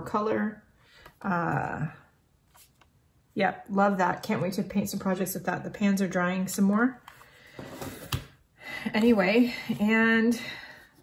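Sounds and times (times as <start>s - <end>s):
woman speaking: 0.0s - 2.1s, 3.3s - 7.0s, 8.8s - 10.7s.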